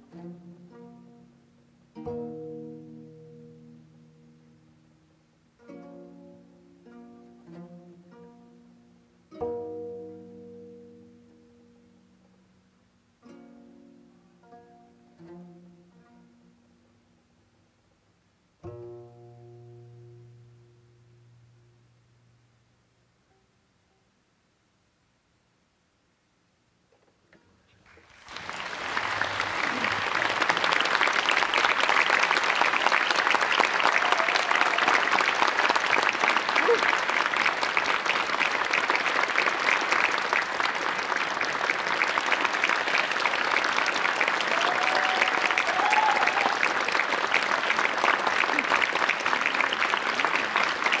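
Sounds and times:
audience applauding: 0:27.8 - 0:51.0.

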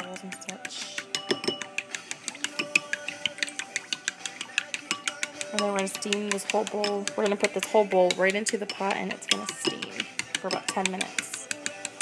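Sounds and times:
chopsticks whisking eggs in bowl: 0:00.0 - 0:12.0.

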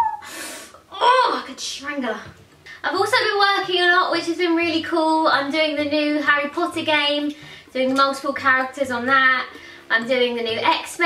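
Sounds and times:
woman gasping and breathing: 0:00.0 - 0:00.8.

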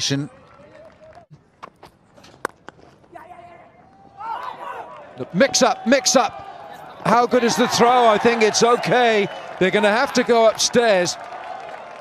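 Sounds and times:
outdoor ambience: 0:00.1 - 0:09.4.

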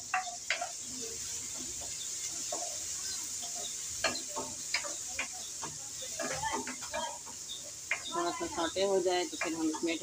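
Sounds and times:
spatula scraping a pan: 0:00.0 - 0:08.2
frying oil hissing: 0:00.0 - 0:10.0.

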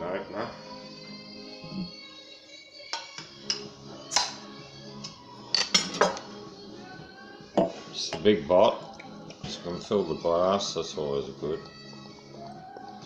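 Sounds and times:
background music: 0:00.0 - 0:13.0
glass clinks and knocks: 0:07.6 - 0:07.8.

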